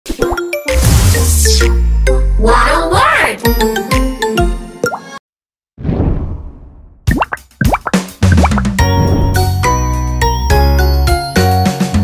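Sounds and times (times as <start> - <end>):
cartoon jingle with chiming tones: 0.2 - 5.2.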